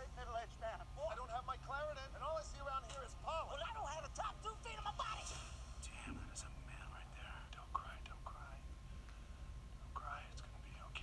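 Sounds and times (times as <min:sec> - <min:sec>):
low steady hum: 0:00.0 - 0:11.0
person whispering: 0:05.9 - 0:08.6, 0:10.0 - 0:11.0.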